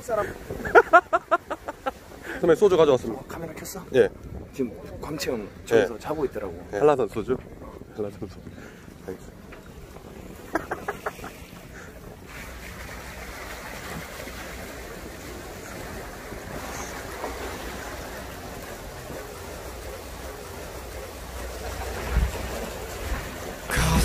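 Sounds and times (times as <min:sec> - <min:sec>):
waves washing against hulls: 0:00.0 - 0:24.0
wind on microphone: 0:03.2 - 0:12.6.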